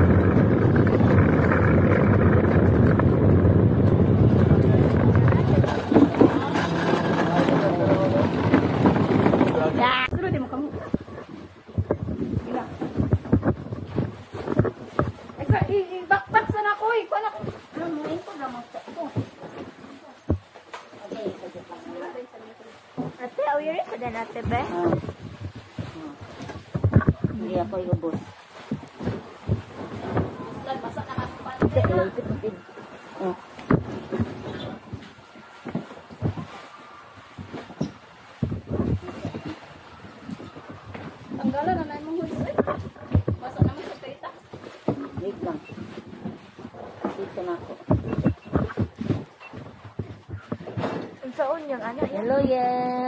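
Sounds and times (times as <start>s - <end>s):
ride seats knocking and clattering: 0.0s - 16.6s, 26.4s - 32.6s, 40.4s - 43.8s, 44.8s - 51.4s
people talking: 3.9s - 11.3s, 12.2s - 13.2s, 15.4s - 19.3s, 21.0s - 25.2s, 25.8s - 28.3s, 29.9s - 35.0s, 38.7s - 39.6s, 41.3s - 45.9s, 46.8s - 49.2s, 51.2s - 53.0s.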